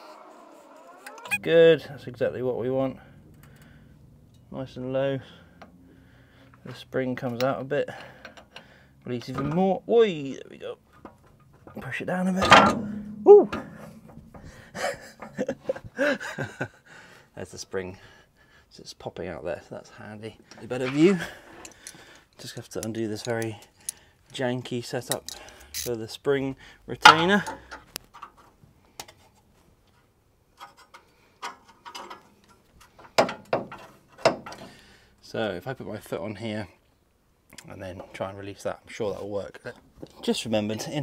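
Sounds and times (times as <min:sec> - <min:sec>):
metal knocks: 0:11.1 - 0:15.5
man chuckling: 0:14.5 - 0:16.9
light metal clicks and clinks: 0:21.6 - 0:24.4.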